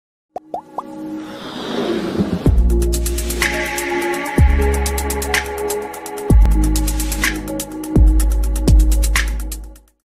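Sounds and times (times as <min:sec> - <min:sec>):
electronic riser: 0:01.2 - 0:03.5.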